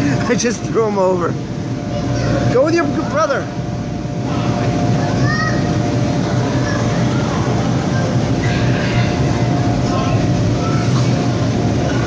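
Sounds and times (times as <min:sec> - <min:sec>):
electric blower fans droning: 0:00.0 - 0:12.0.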